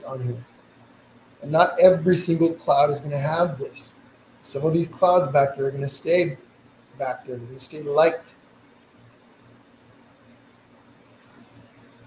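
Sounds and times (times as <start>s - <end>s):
soft low hum: 0.0s - 12.0s.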